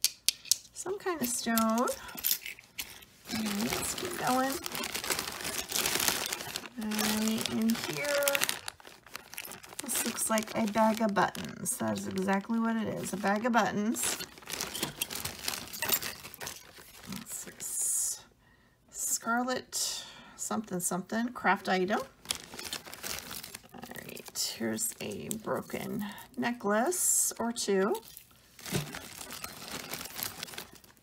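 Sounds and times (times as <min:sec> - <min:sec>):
plastic bags rustling: 0:01.0 - 0:17.6, 0:22.1 - 0:26.4, 0:27.8 - 0:31.0.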